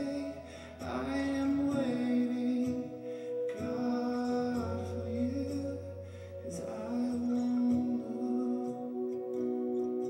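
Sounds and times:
worship band playing soft song: 0:00.0 - 0:10.0.

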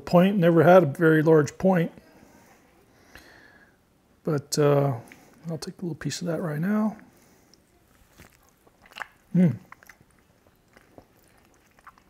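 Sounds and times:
man chewing with mouth clicks: 0:07.2 - 0:12.0
man humming mm: 0:09.3 - 0:09.7.

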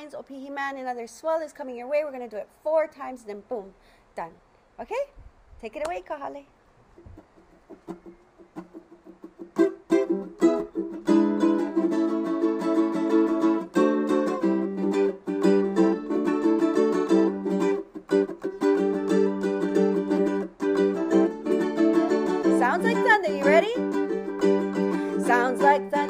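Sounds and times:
ukulele plucking and strumming: 0:06.9 - 0:26.0.

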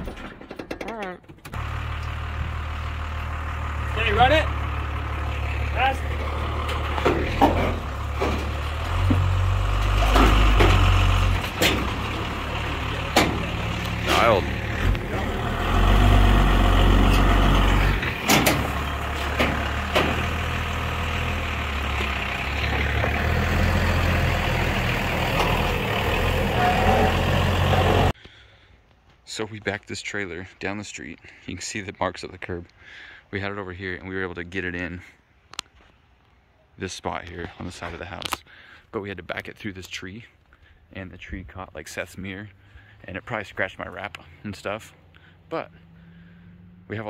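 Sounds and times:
truck engine rumbling under load: 0:00.0 - 0:28.7, 0:40.3 - 0:47.0.

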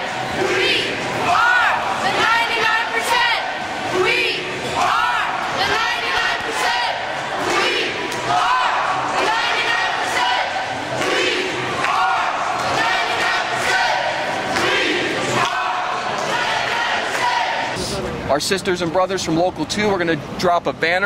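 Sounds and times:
crowd shouting and chanting: 0:00.0 - 0:18.4.

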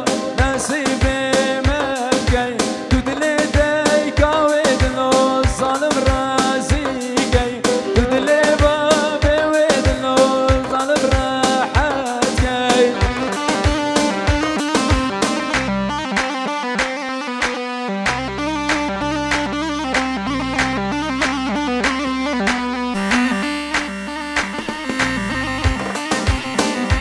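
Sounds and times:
deep bass line: 0:00.4 - 0:27.0
ornamented string or keyboard melody: 0:07.4 - 0:10.2, 0:12.8 - 0:27.0
quick steady drum beat: 0:25.6 - 0:27.0.

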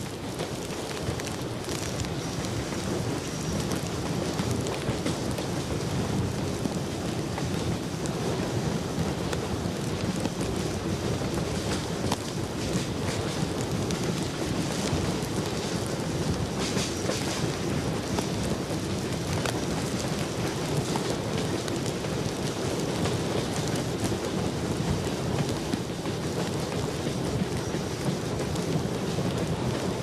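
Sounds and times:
steam train rumbling: 0:00.0 - 0:30.0.

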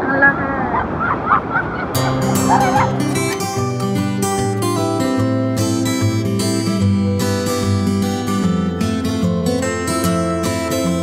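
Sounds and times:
acoustic guitar music: 0:01.9 - 0:11.0.

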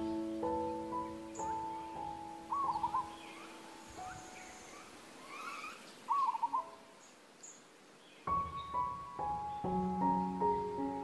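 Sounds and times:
soft piano notes: 0:00.0 - 0:04.8, 0:08.2 - 0:11.0
birds chirping: 0:00.0 - 0:11.0
wavering bird call: 0:00.9 - 0:06.9.

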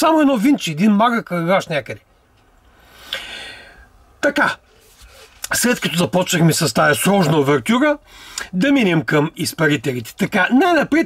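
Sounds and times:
person breathing in: 0:02.8 - 0:03.9.

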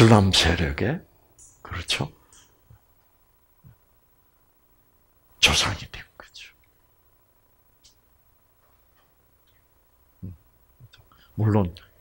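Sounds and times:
man whispering: 0:01.6 - 0:02.5, 0:05.4 - 0:06.7, 0:10.2 - 0:12.0.

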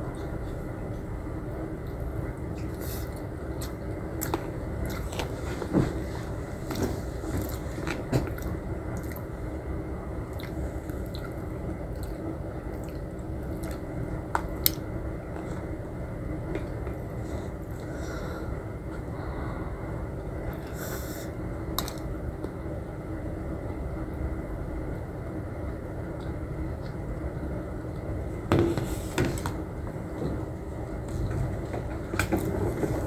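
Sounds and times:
steady background hum: 0:00.0 - 0:33.0.

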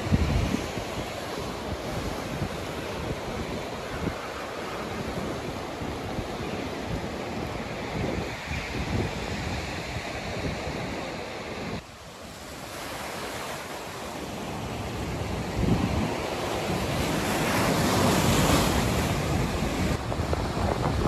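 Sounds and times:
wind buffeting microphone: 0:00.0 - 0:11.9, 0:14.5 - 0:21.0.

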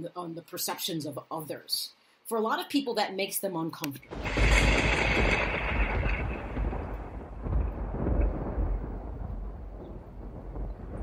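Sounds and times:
low rumble of thunder: 0:04.1 - 0:11.0.

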